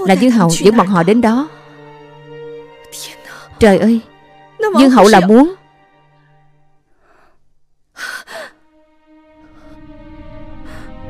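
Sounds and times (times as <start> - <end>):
faint background music: 0.0 - 11.0
woman gasping: 8.0 - 8.6.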